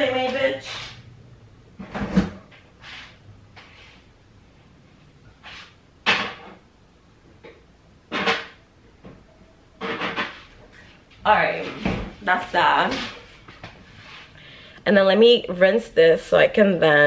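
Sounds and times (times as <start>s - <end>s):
woman's voice: 0.0s - 0.8s, 11.3s - 13.1s, 14.8s - 17.0s.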